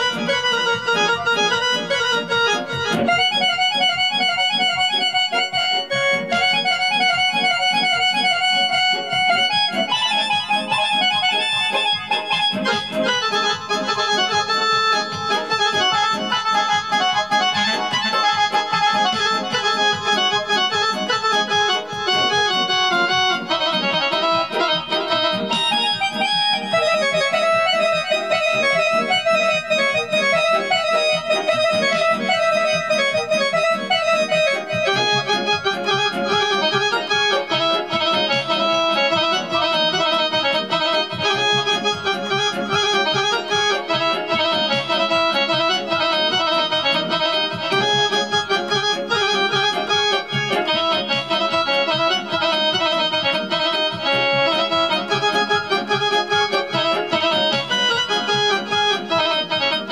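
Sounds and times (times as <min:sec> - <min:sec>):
electronic keyboard accordion melody: 0:00.0 - 0:59.9.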